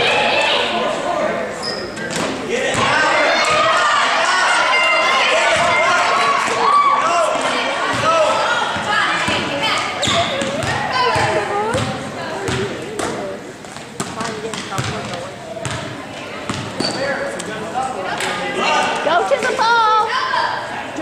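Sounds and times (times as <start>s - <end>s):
voices calling out: 0.0s - 13.6s
basketball dribbling on gym floor: 10.1s - 13.1s, 14.0s - 15.9s.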